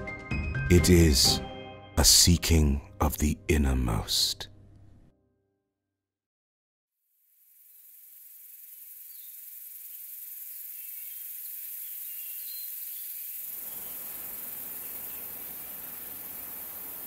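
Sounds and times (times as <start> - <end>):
insect hiss: 7.0 - 17.0
faint bird chirps: 8.2 - 17.0.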